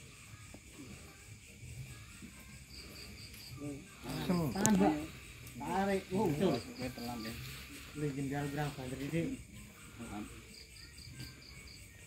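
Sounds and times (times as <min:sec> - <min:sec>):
crickets chirping: 0:00.0 - 0:12.0
men talking: 0:03.6 - 0:10.4.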